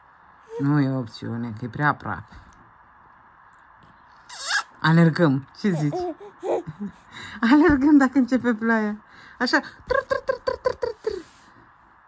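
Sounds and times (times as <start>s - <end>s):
baby laughing: 5.6s - 7.1s.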